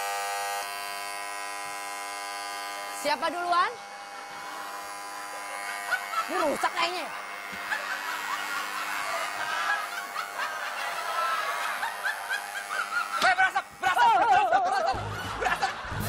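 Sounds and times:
studio audience laughing: 4.1s - 16.0s.

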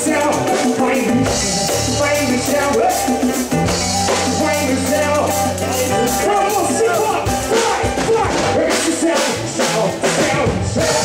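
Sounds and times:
drum kit beat: 0.0s - 11.0s
samba band playing: 0.0s - 11.0s.

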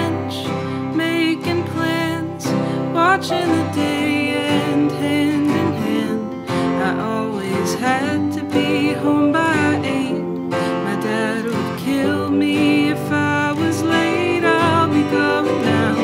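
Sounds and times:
strummed acoustic guitars: 0.0s - 16.0s
electric piano chords: 2.0s - 16.0s.

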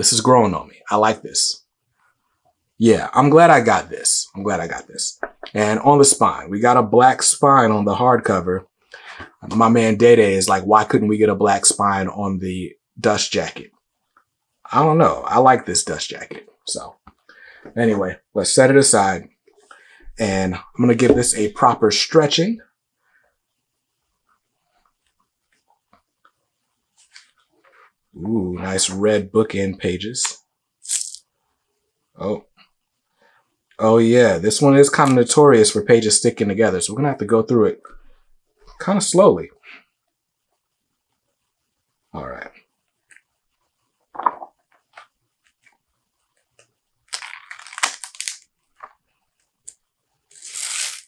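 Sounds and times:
stuck pages peeling apart: 47.1s - 48.4s, 50.3s - 51.0s
pages being turned: 47.1s - 48.9s, 50.3s - 51.0s.

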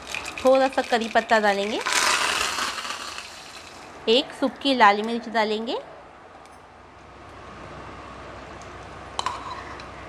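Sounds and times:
leaves sizzling in hot oil: 0.0s - 3.8s.

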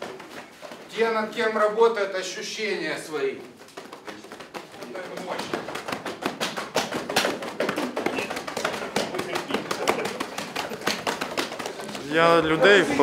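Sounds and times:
fingertips tapping on padded jackets: 0.0s - 1.3s, 3.2s - 12.4s.

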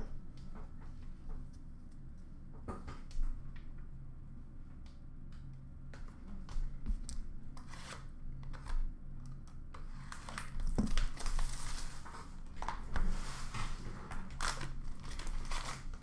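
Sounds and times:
wrapper crinkling: 10.1s - 12.8s, 14.3s - 16.0s.

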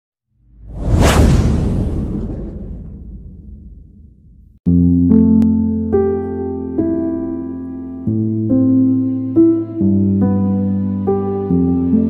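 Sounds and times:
deep rumble: 0.5s - 4.6s
rising whoosh: 0.5s - 4.6s.

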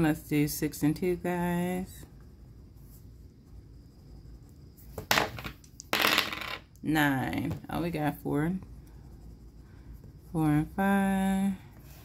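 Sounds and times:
dice clattering on a table: 5.0s - 6.8s.

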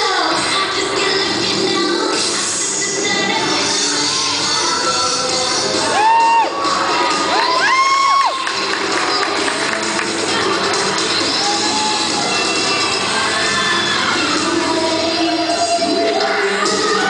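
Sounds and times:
girls cheering and screaming: 5.6s - 9.5s, 10.9s - 17.0s
high-pitched yells: 11.2s - 14.4s.

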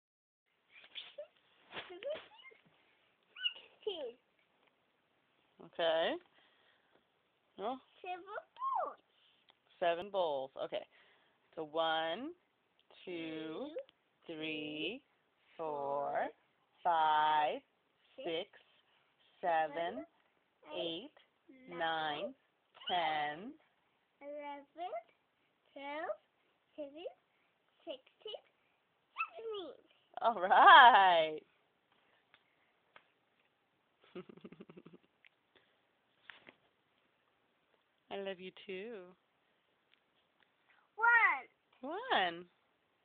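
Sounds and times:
child calling out: 8.6s - 9.0s.

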